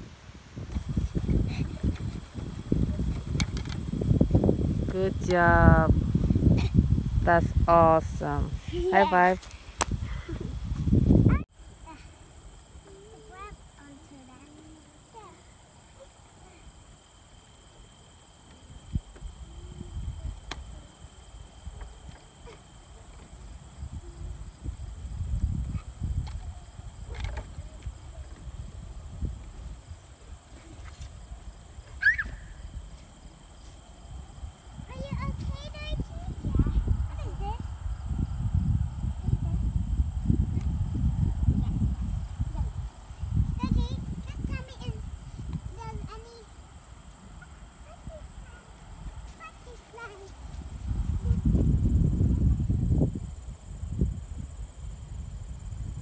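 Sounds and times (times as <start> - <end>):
faint children's voices: 11.3 - 16.8, 47.3 - 51.6.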